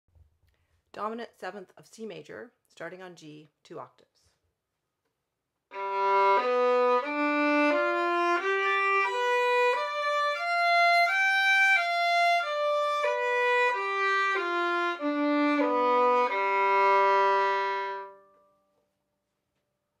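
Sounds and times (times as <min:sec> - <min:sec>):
violin playing arpeggio: 0:05.7 - 0:18.3.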